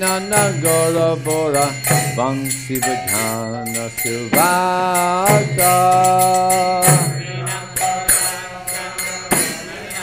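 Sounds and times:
hand cymbals jingling: 0:00.0 - 0:10.0.

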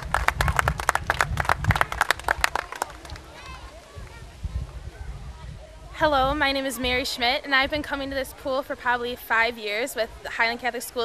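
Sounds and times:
small group applauding: 0:00.0 - 0:04.2.

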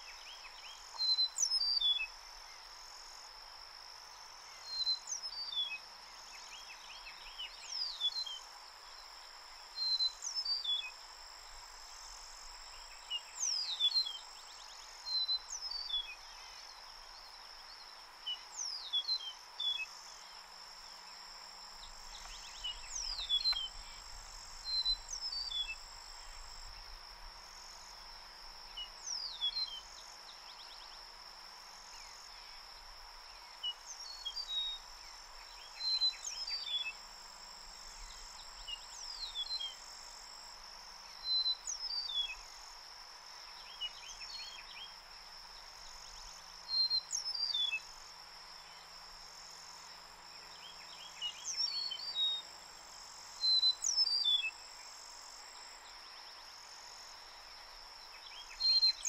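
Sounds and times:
high insect drone: 0:00.0 - 0:59.0
meadowlark singing: 0:21.9 - 0:23.9.

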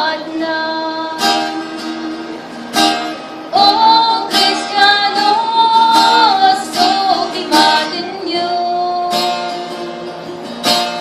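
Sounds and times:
woman singing a slow hymn: 0:00.0 - 0:02.0, 0:03.5 - 0:09.6
strummed acoustic guitar: 0:00.0 - 0:11.0.

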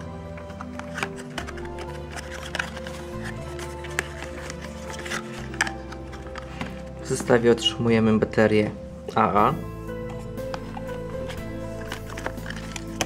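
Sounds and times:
background music with held notes: 0:00.0 - 0:13.0
packaging taps and clicks: 0:00.3 - 0:07.4, 0:10.0 - 0:13.0.

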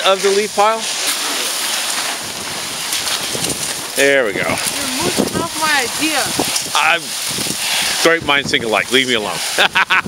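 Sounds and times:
plastic tarp rustling in wind: 0:00.0 - 0:10.0.

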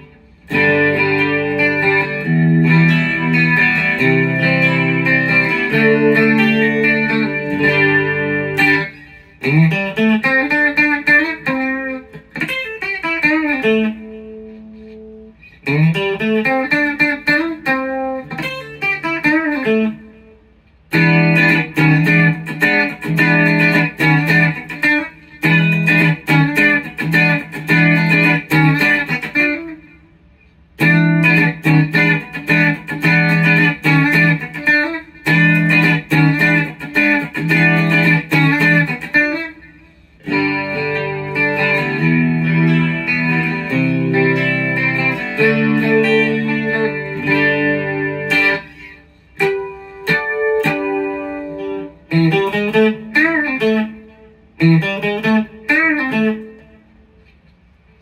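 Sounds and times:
electric guitar strummed chords: 0:00.0 - 0:30.1, 0:30.8 - 0:57.2
electric guitar lead phrases: 0:00.0 - 0:57.2.

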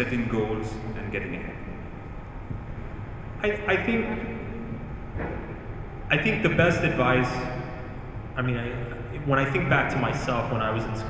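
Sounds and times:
low rumble of room noise: 0:00.0 - 0:11.0.

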